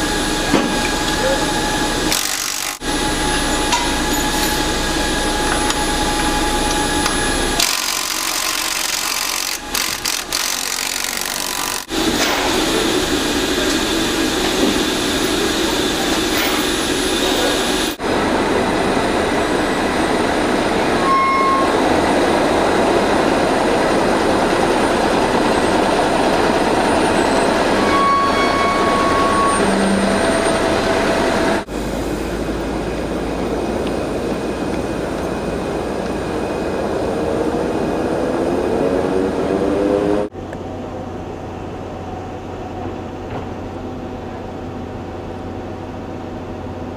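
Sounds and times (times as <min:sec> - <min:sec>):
truck engine and rolling wheels: 0:00.0 - 0:46.9.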